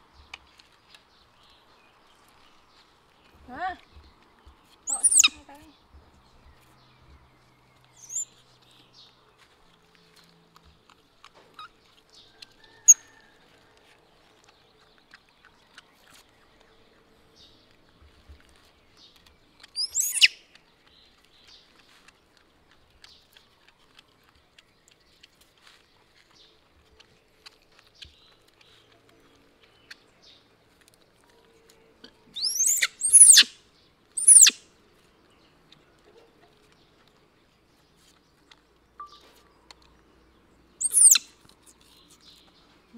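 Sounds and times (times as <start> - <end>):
baby monkey screaming: 4.9 - 5.4, 19.8 - 20.3, 32.4 - 33.5, 34.2 - 34.6, 40.8 - 41.2.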